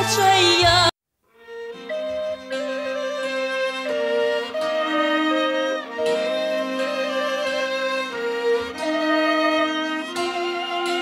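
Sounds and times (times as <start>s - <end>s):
folk instrumental melody: 0.0s - 11.0s
held drone: 1.8s - 11.0s.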